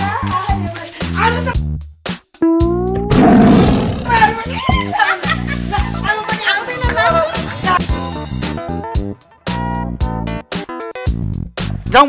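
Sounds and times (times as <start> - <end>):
loud animal roar: 3.1 - 4.5.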